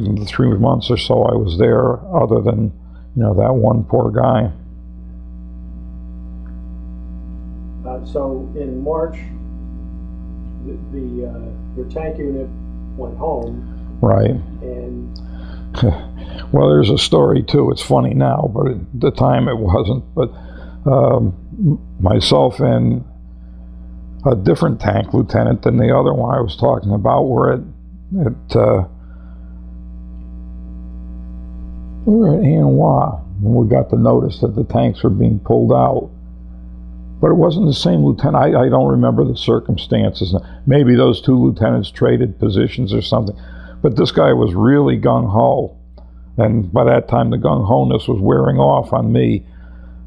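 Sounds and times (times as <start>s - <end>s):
electrical mains hum: 0.0s - 50.0s.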